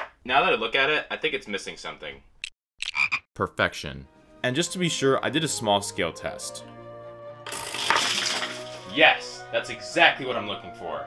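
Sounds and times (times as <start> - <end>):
plastic parts rattling: 7.5 - 9.0.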